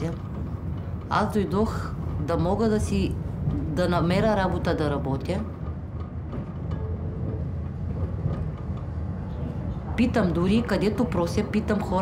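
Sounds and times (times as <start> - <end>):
tram rumbling on rails: 0.0 - 12.0.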